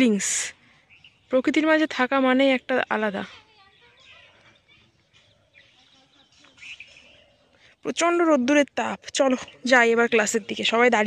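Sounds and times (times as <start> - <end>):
birds chirping: 0.0 - 11.0.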